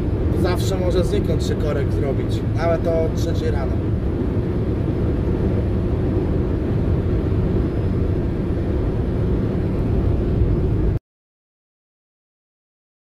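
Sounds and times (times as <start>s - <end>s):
road noise: 0.0s - 11.0s
truck engine drone: 0.0s - 11.0s.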